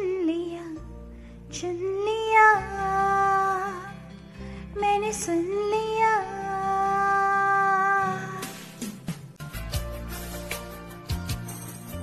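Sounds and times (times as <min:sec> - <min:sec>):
karaoke backing music: 0:01.5 - 0:12.0.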